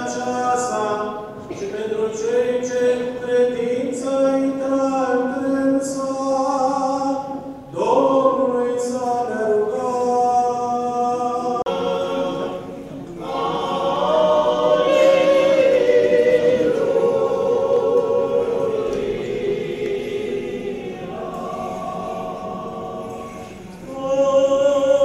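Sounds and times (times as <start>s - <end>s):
choir chanting long notes: 11.0s - 25.0s.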